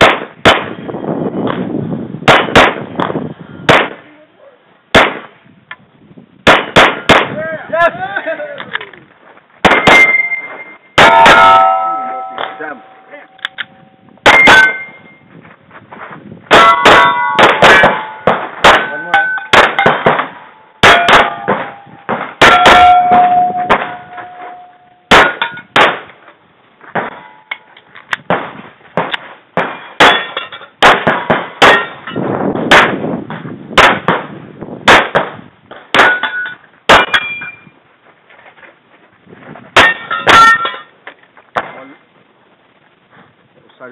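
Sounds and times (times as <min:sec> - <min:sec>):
pistol firing quick shots: 0:00.0 - 0:00.8, 0:02.3 - 0:02.8, 0:04.9 - 0:05.3, 0:06.4 - 0:07.4, 0:09.6 - 0:10.1, 0:30.8 - 0:32.0, 0:33.8 - 0:34.3, 0:34.9 - 0:36.2
steel plate targets ringing: 0:09.7 - 0:15.2, 0:16.5 - 0:25.8, 0:27.0 - 0:27.7, 0:29.7 - 0:30.8, 0:31.6 - 0:32.3, 0:36.0 - 0:37.7, 0:39.8 - 0:40.9.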